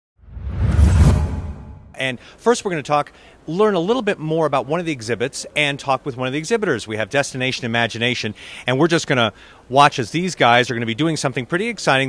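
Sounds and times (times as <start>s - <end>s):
deep rumble: 0.2s - 2.0s
whoosh sound effect: 0.2s - 2.0s.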